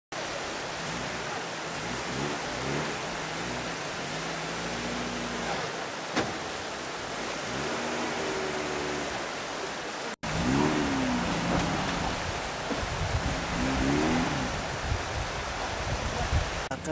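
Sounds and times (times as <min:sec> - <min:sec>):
rushing mountain river: 0:00.1 - 0:16.9.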